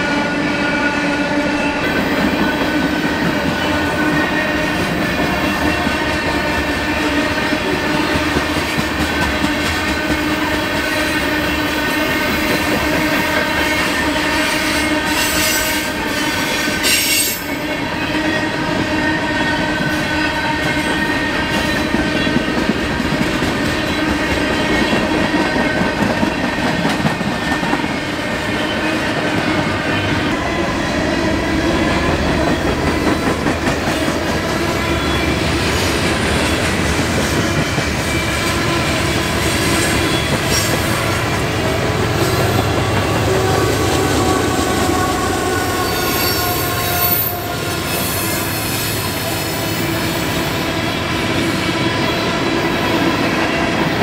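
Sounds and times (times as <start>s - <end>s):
diesel locomotive passing: 0.0s - 54.0s
train wheels squealing: 14.6s - 18.4s, 39.4s - 41.0s, 44.5s - 53.1s
rumble and clatter of freight cars: 14.8s - 45.6s.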